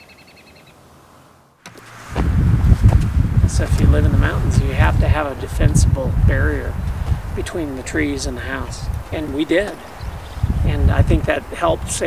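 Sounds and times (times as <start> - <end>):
bird trill: 0.0 - 0.8, 9.7 - 10.6
low rumble: 1.8 - 12.0.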